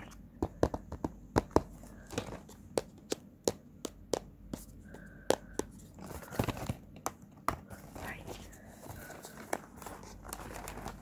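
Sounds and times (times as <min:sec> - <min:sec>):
taps on cardboard: 0:00.3 - 0:05.9
cardboard crinkling: 0:07.6 - 0:11.0.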